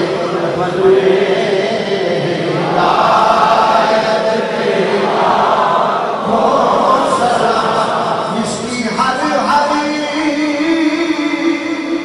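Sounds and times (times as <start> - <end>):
crowd chanting: 0.0 - 8.6.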